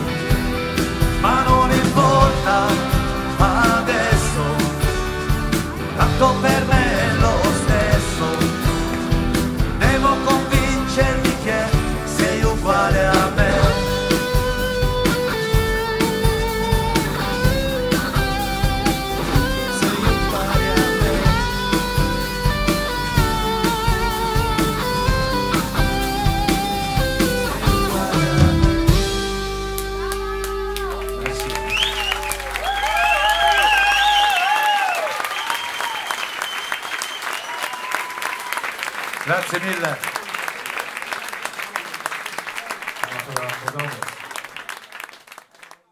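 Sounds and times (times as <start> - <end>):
live pop-rock band playing: 0.0 - 34.3
electric guitar line: 0.0 - 34.5
audience cheering and applauding: 4.9 - 45.9.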